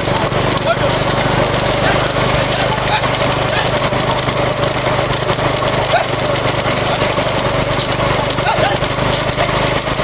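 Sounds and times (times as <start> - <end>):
cart rattling: 0.0 - 10.0
hooves clattering on road: 0.0 - 10.0.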